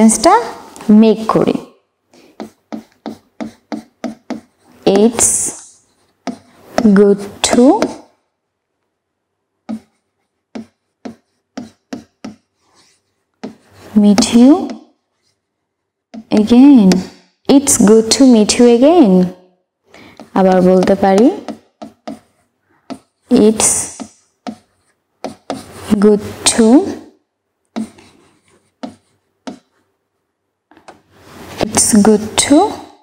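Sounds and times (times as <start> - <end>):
marker pen writing on whiteboard: 1.0 - 8.1, 9.6 - 19.3, 20.0 - 32.9.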